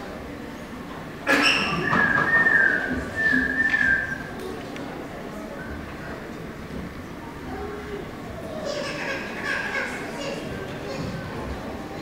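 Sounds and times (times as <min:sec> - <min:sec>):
low murmur in a hall: 0:00.0 - 0:12.0.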